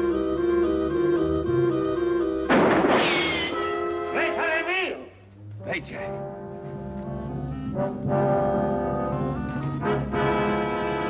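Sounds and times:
low brass chords: 3.6 - 11.0.

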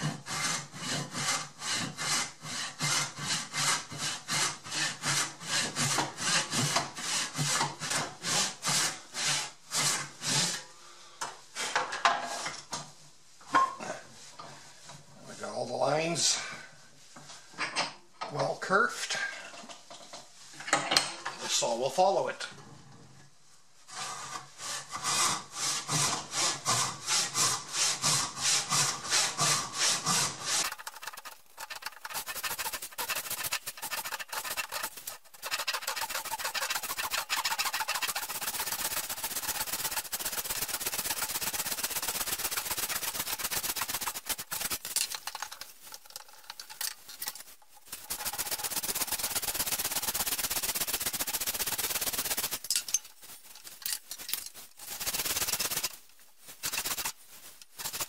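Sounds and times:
backsaw cutting wood: 0.0 - 10.6, 24.6 - 45.4.

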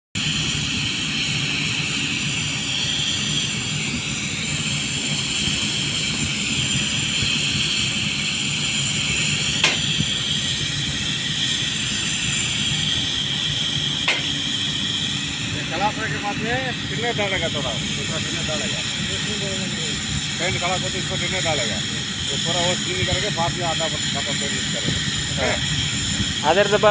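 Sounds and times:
low machine drone: 0.2 - 26.9
spray gun hissing: 0.2 - 26.9.

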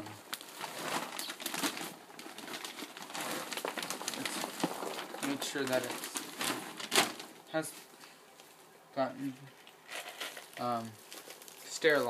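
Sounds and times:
plastic bags crinkling: 0.1 - 7.9, 9.5 - 12.0.

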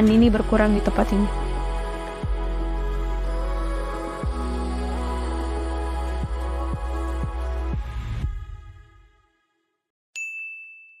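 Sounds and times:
soft background music: 0.0 - 8.1.

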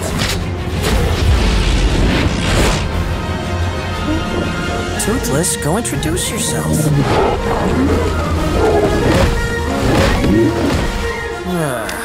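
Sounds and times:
music: 0.0 - 12.0.

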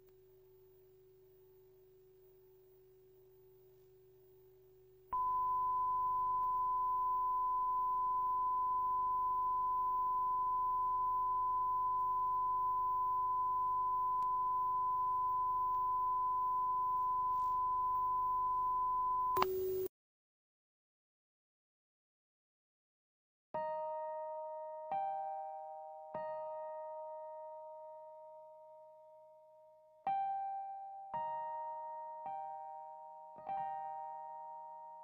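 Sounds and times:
steady pure test tone: 2.2 - 19.9
tv static hiss: 19.4 - 19.9.

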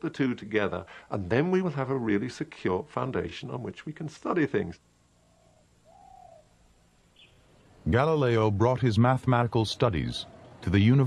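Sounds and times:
faint bird cooing: 5.2 - 7.8, 9.7 - 11.0.

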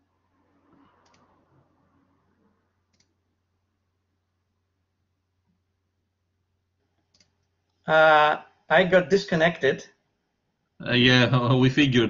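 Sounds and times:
faint clicks: 0.7 - 1.4, 2.9 - 3.2, 6.9 - 7.8.

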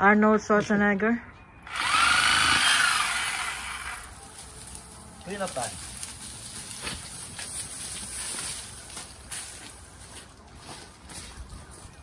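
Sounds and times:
reciprocating saw cutting: 1.6 - 4.2.

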